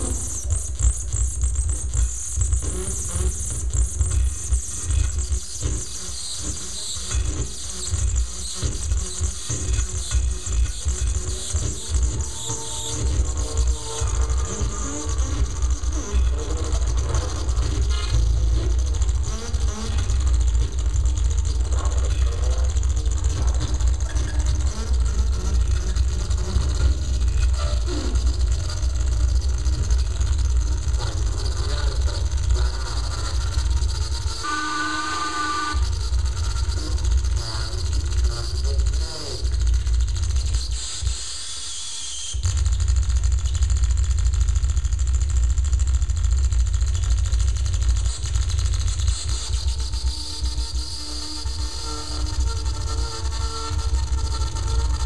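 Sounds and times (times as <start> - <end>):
heavy bass drone: 0.0 - 41.5, 42.3 - 55.0
noisy shifting electronic textures: 0.0 - 55.0.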